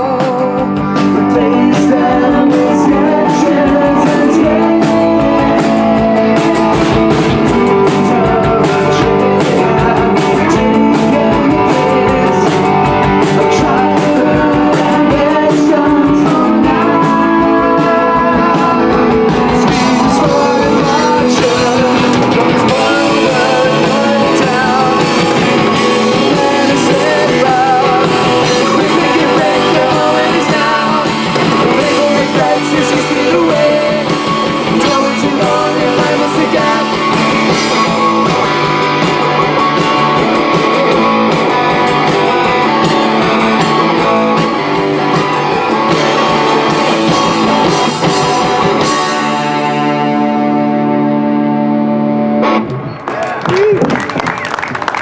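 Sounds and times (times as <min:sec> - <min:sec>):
person singing: 0:00.0 - 0:44.5
rock band playing live: 0:00.0 - 0:55.0.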